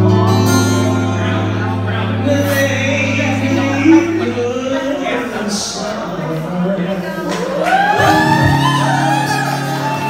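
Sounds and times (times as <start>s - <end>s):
live musical accompaniment: 0.0s - 10.0s
man singing: 0.6s - 7.3s.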